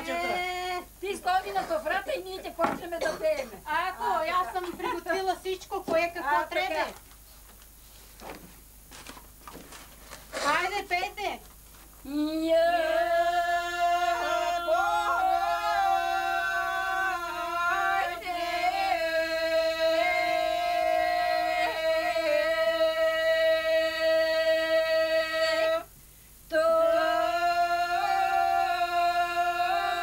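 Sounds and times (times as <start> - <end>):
women singing unaccompanied: 0.0 - 5.2, 12.0 - 25.9, 26.5 - 30.0.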